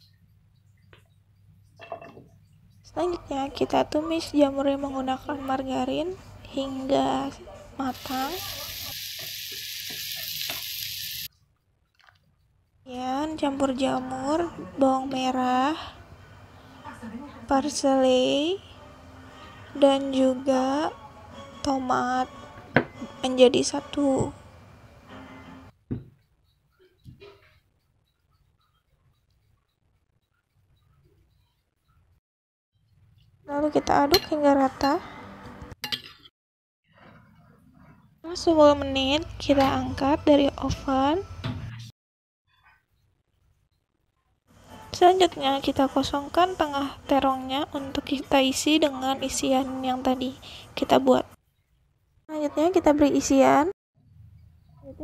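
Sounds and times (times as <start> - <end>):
mushrooms sizzling in a pan: 7.9 - 11.3.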